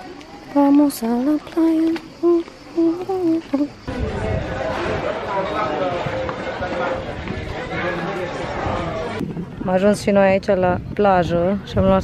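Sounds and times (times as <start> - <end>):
outdoor crowd noise: 0.0 - 12.0
woman humming: 1.3 - 3.8.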